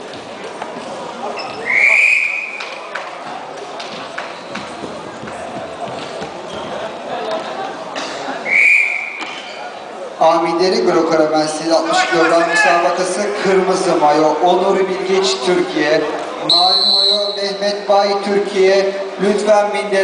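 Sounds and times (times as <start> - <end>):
background chatter: 0.0 - 20.0
referee's whistle blasts: 1.6 - 2.7, 8.5 - 9.3, 16.5 - 17.6.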